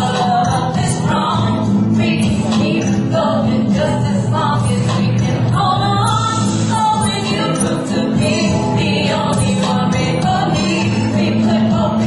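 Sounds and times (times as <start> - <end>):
live band playing: 0.0 - 12.0
woman singing: 0.0 - 12.0.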